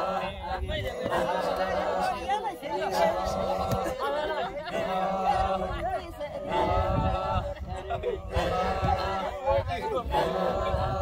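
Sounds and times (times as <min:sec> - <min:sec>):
men chanting: 0:00.0 - 0:11.0.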